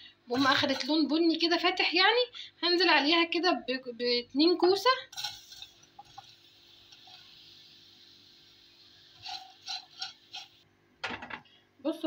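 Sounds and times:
spatula scraping pot: 0.3 - 1.1, 9.1 - 10.6
faint sizzling: 0.3 - 2.0, 4.3 - 12.0.

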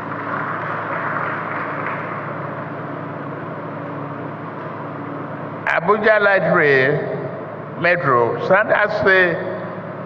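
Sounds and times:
low hum: 0.0 - 10.0
steady background noise: 0.0 - 10.0.

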